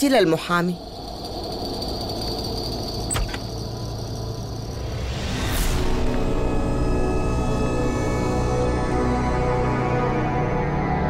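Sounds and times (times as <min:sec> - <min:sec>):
faint high whine: 0:00.0 - 0:10.4
low rumbling drone: 0:00.8 - 0:11.0.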